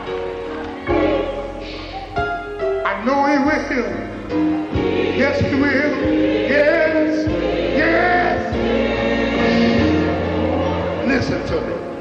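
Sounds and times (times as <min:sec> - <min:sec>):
gospel choir singing: 0:00.0 - 0:12.0
low instrumental accompaniment: 0:00.0 - 0:12.0.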